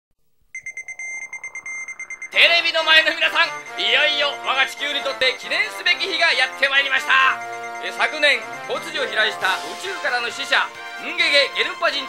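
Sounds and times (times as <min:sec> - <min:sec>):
pulsing electronic ringing tone: 0:00.6 - 0:11.1.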